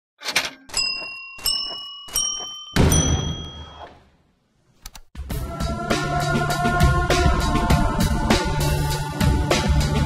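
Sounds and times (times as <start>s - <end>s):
full ringing hit: 2.8s - 3.8s.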